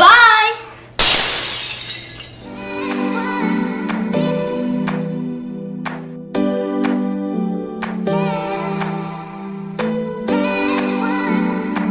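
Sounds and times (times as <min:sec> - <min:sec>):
glass shattering: 0:01.0 - 0:02.6.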